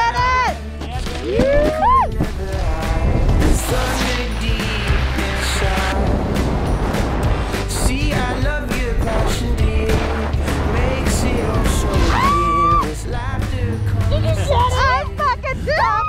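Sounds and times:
background music with bass and drums: 0.0 - 16.0.

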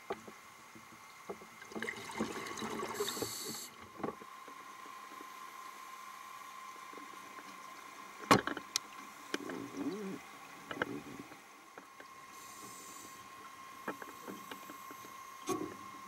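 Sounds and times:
soft underwater clicks and knocks: 0.0 - 1.9, 3.8 - 5.3, 6.8 - 12.2, 13.4 - 16.0
faint steady hum: 0.0 - 16.0
wavering gurgle: 1.6 - 3.3, 9.4 - 11.4.

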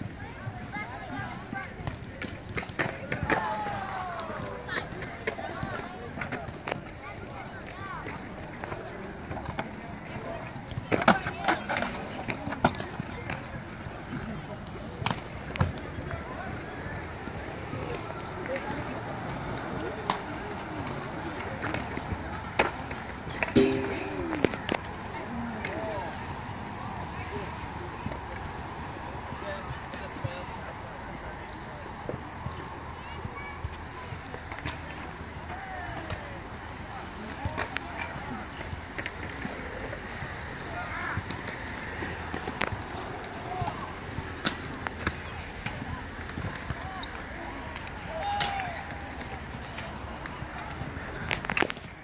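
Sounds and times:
skateboard clacks on concrete: 0.5 - 16.1, 17.2 - 25.0, 34.3 - 52.0
short pitched ring: 23.6 - 24.6.

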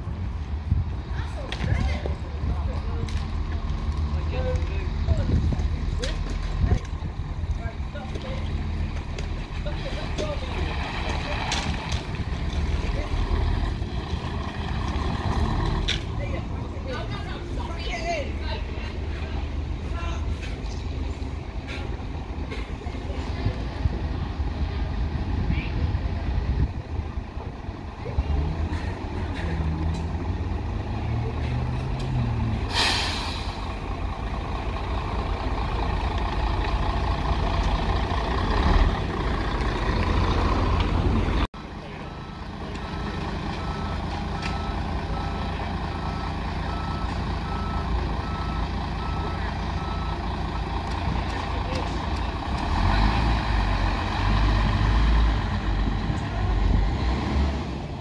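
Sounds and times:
bus diesel engine running: 0.0 - 58.0
air brake hiss: 32.7 - 33.7
warning beeps: 41.8 - 50.2.

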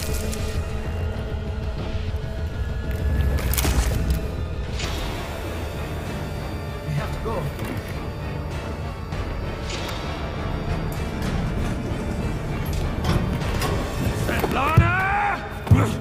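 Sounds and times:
low drone: 0.0 - 14.2.

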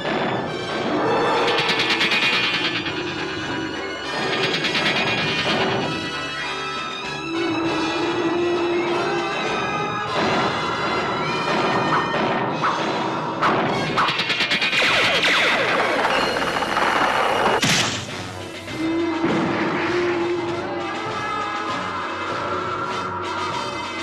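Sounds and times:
dramatic cartoon background music: 0.0 - 24.0
crash and boom effects: 11.4 - 18.4.

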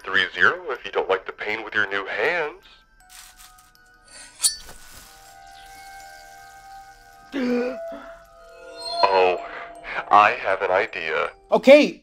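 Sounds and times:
background music tones: 0.0 - 12.0
sharp ringing clink: 3.8 - 9.0.

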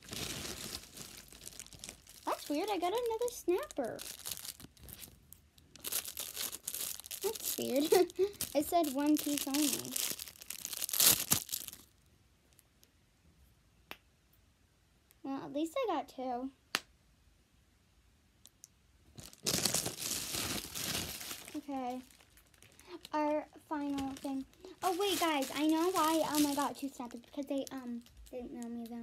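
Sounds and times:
plastic bag crinkling: 0.0 - 12.0, 19.1 - 29.0.

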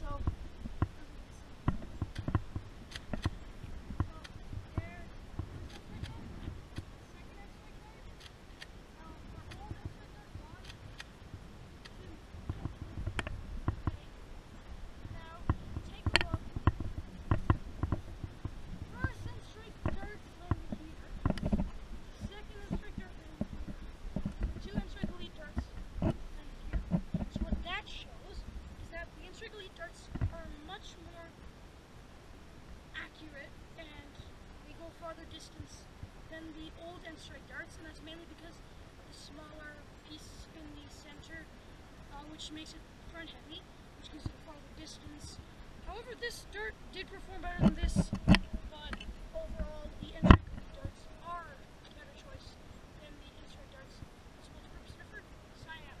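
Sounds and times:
faint voices: 0.0 - 31.4, 32.9 - 56.0
wind rumble on microphone: 0.0 - 31.6, 39.1 - 52.4.

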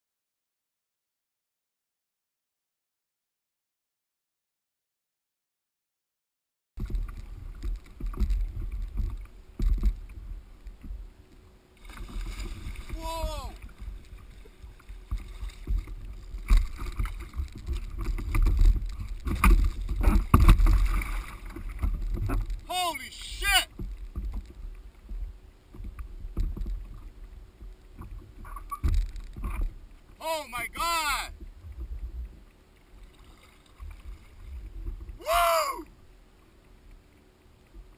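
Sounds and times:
water splashing: 11.7 - 37.2
wind rumbling on microphone: 11.8 - 22.7, 23.7 - 30.2, 31.3 - 33.1
man calling out: 12.9 - 13.6, 22.7 - 23.7, 30.2 - 31.3, 35.2 - 35.9.

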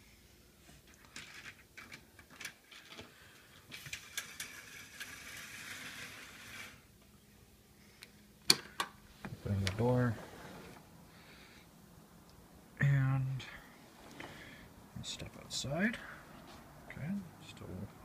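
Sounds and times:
window blinds rustling and clacking: 0.8 - 6.9, 9.6 - 10.8.

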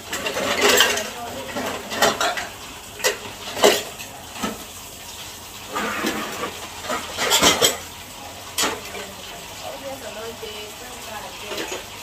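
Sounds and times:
tap running into tub: 0.0 - 7.9.

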